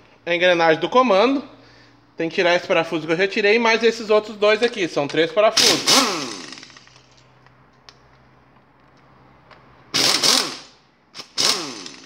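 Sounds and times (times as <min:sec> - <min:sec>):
impact wrench whine: 0:05.6 - 0:07.2, 0:09.9 - 0:12.0.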